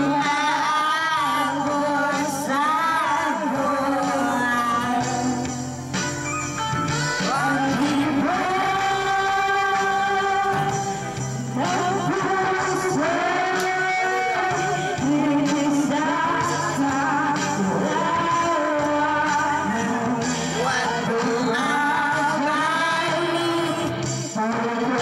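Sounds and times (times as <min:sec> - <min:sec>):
girl singing into microphone: 0:00.0 - 0:25.0
karaoke backing track: 0:00.0 - 0:25.0.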